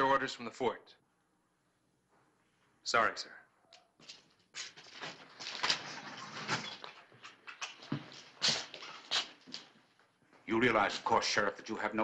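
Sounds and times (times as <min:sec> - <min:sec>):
chair scraping and creaking: 0:04.0 - 0:09.8.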